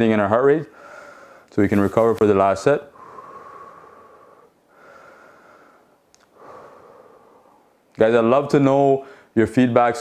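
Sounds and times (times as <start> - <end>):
man breathing deeply: 0.7 - 1.5, 2.9 - 7.8, 9.0 - 9.4
faint click: 6.1 - 6.4.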